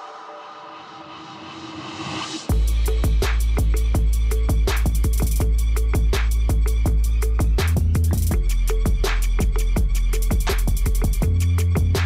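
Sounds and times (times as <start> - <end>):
electronic music with held tones: 2.4 - 12.0.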